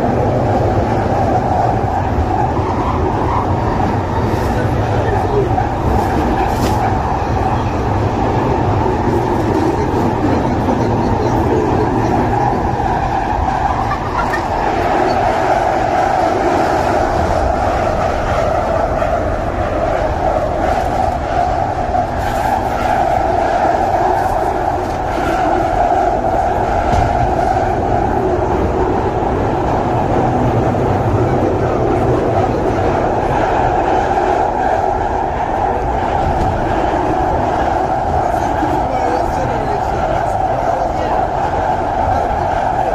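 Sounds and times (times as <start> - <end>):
train wheels rumbling on rails: 0.0 - 42.9.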